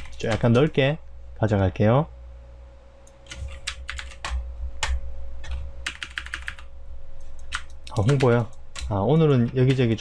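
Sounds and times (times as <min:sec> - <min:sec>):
faint steady hum: 0:00.0 - 0:10.0
computer keyboard typing: 0:03.2 - 0:10.0.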